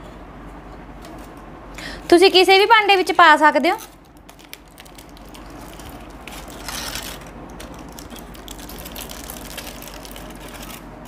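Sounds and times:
aluminium foil crinkling: 3.0s - 10.9s.

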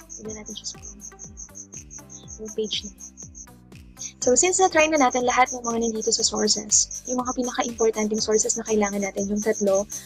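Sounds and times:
high repeating chirping: 0.0s - 10.0s
music with steady beat: 0.0s - 10.0s.

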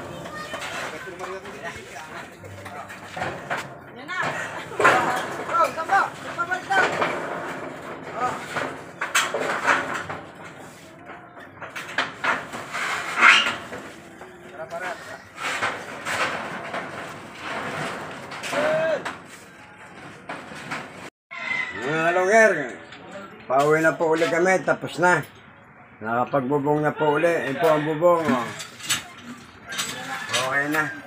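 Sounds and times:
voices calling out: 0.0s - 16.4s, 21.4s - 31.0s
scraping and knocking on wooden boards: 0.0s - 21.1s.

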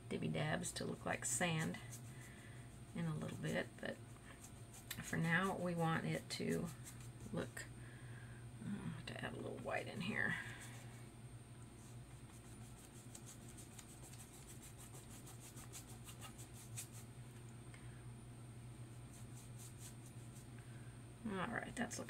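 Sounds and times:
steady low hum: 0.0s - 22.0s
paintbrush scratching on paper: 0.8s - 7.4s, 11.8s - 17.1s, 19.0s - 20.5s.

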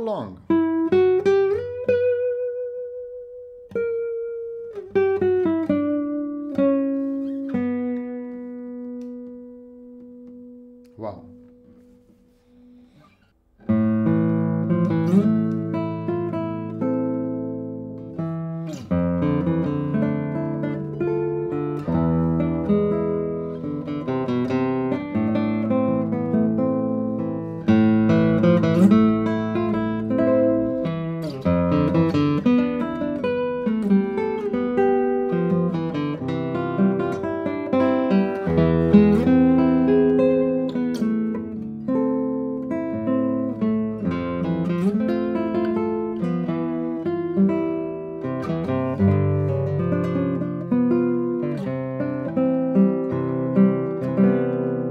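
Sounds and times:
fingerstyle classical guitar: 0.0s - 54.9s.

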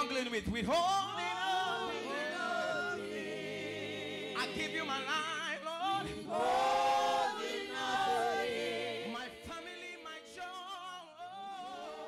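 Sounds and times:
congregation singing: 0.8s - 12.0s.

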